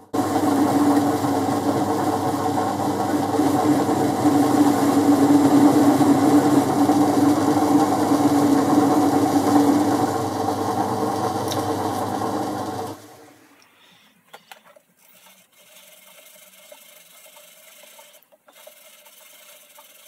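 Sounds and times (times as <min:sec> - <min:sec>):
lathe running: 0:00.0 - 0:13.4, 0:15.0 - 0:20.0.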